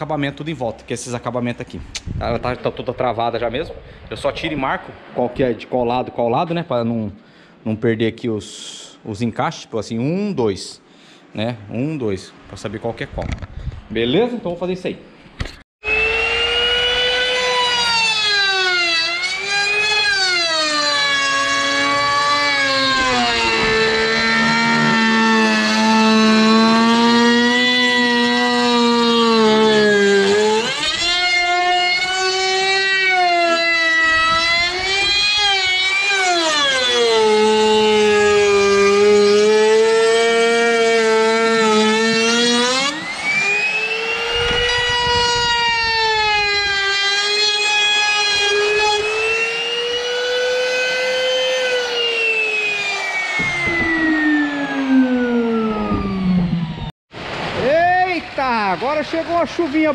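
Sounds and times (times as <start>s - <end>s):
router whining while cutting wood: 15.8s - 56.9s.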